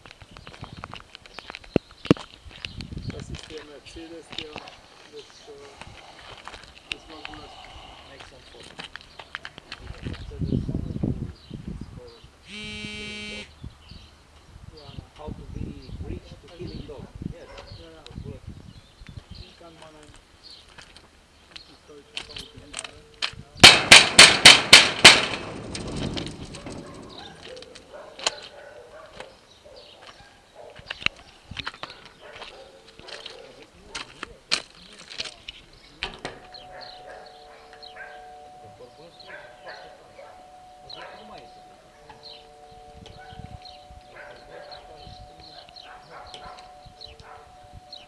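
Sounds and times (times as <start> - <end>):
electric doorbell buzz: 12.5 - 13.5
bangs on sheet-metal gate: 23.6 - 27.4.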